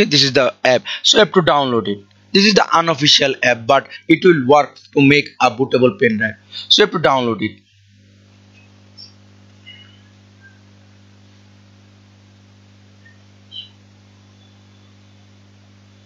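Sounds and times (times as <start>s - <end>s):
low electrical hum: 0.0s - 16.0s
faint high chirps: 8.5s - 10.9s, 12.9s - 16.0s.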